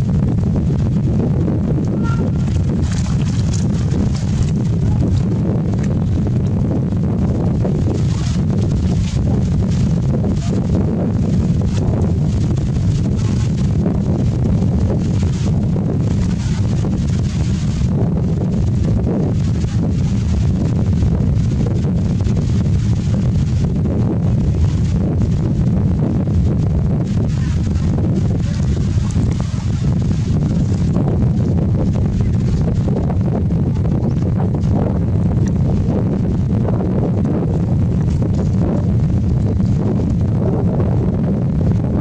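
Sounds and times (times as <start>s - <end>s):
wind buffeting microphone: 0.0s - 42.0s
water splashes: 1.6s - 23.7s, 27.0s - 34.8s.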